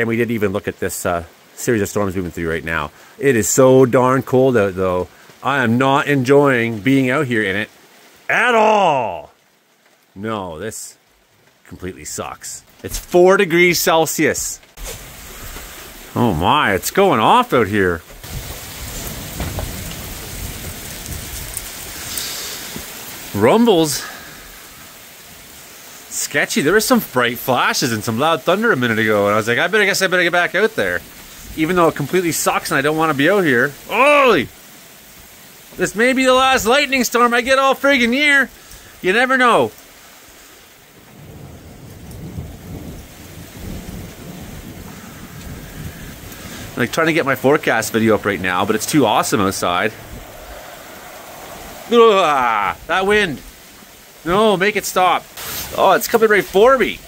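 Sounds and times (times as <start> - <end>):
steady rain falling: 0.0 - 57.0
wind: 0.0 - 57.0.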